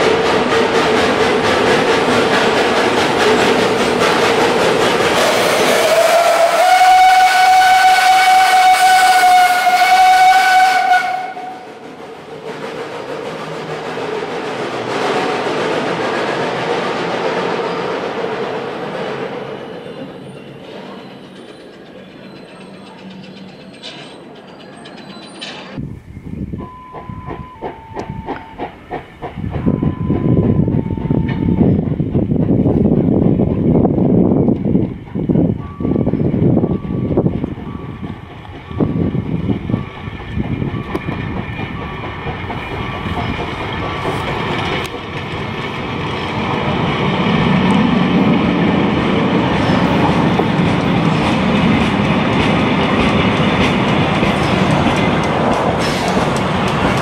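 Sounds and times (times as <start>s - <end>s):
steam hissing: 0.0s - 15.3s, 55.6s - 57.0s
steam whistle blast: 5.4s - 11.7s.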